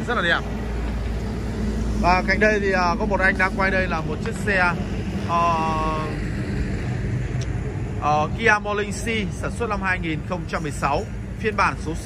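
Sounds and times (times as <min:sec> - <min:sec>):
vehicle rumble: 0:00.0 - 0:12.0.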